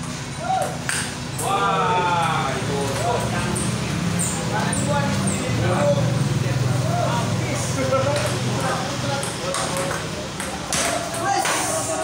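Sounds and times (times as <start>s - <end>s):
table tennis ball hits: 8.1s - 11.8s.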